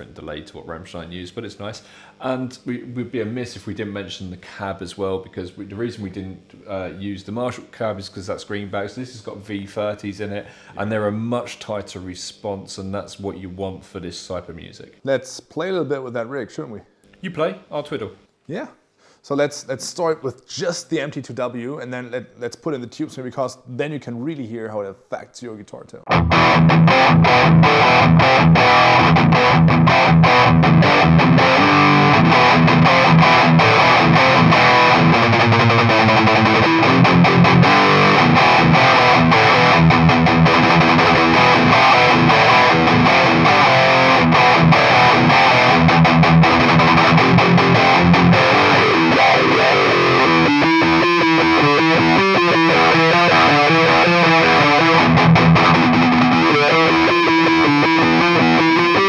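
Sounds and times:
distorted electric guitar riffs: 26.1s - 59.0s.

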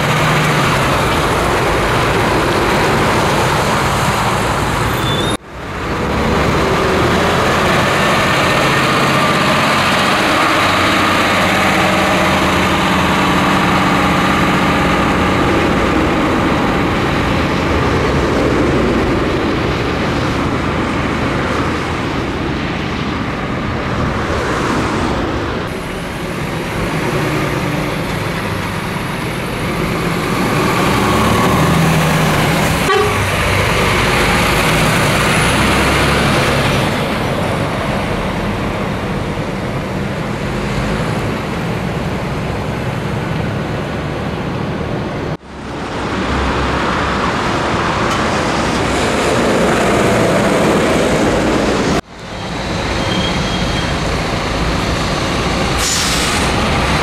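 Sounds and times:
truck diesel engine: 0.0s - 57.0s
tyres on road: 0.0s - 57.0s.

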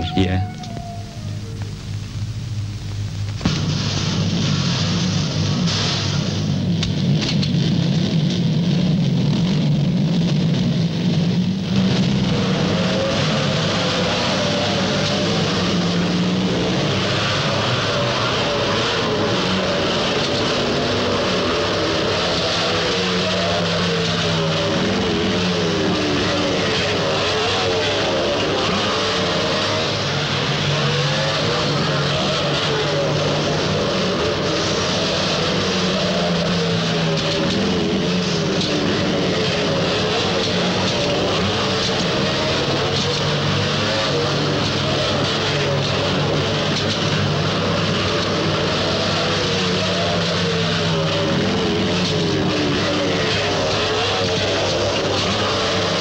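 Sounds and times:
racing motorcycle engines revving: 3.0s - 56.0s.

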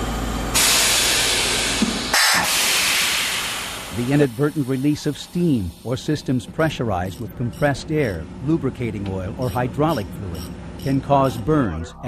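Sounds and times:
high-pressure steam hissing: 0.6s - 7.2s
low machinery rumble: 3.0s - 12.0s.

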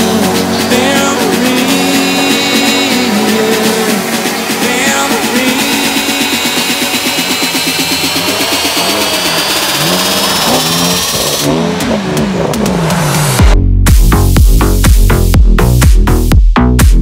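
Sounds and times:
car engines revving: 0.0s - 13.6s
dance music with heavy bass: 0.0s - 17.0s
music track: 0.0s - 17.0s.

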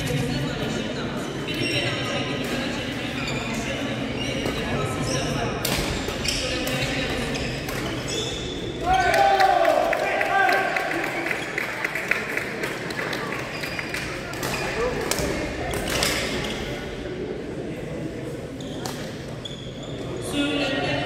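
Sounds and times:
voices in echoing hall: 0.0s - 21.0s.

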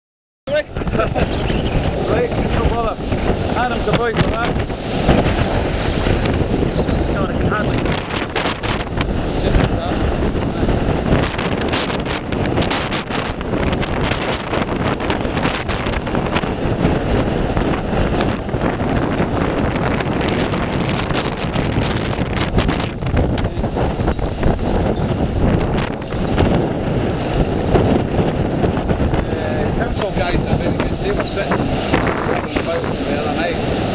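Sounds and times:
wind buffeting microphone: 0.5s - 33.9s.

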